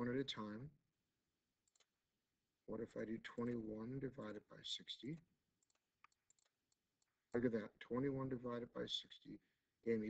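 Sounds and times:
computer mouse clicks: 1.6s - 1.9s, 5.1s - 7.1s.

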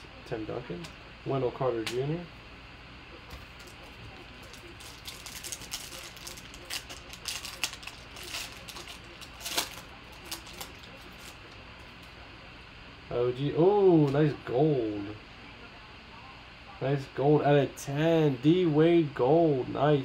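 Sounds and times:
foil pack crinkling and tearing: 3.5s - 11.6s.

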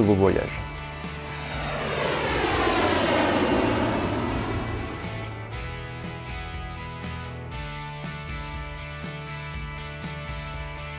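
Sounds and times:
airplane flyby engine noise: 0.0s - 6.8s.

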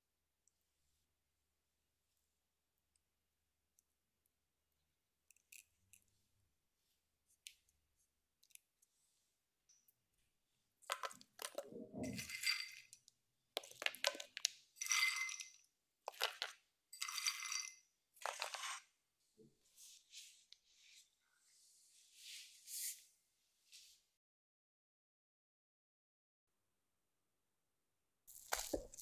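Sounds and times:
nuts clattering into metal pan: 13.6s - 18.8s, 28.3s - 29.0s.

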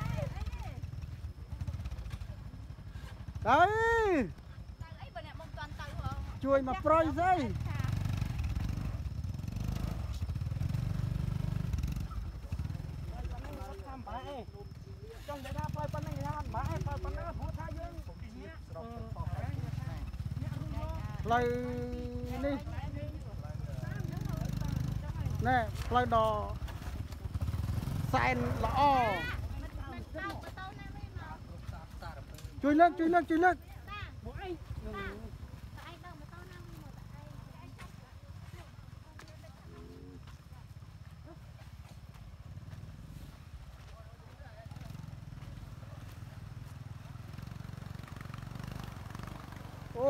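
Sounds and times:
people talking: 0.0s - 0.8s, 12.4s - 26.6s, 28.1s - 40.9s
small motorcycle engine rumbling: 0.0s - 50.0s.

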